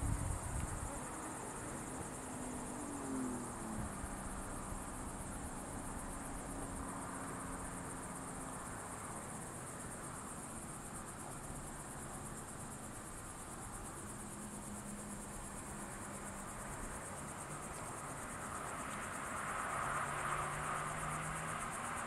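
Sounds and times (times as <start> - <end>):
crickets trilling: 0.0 - 22.0.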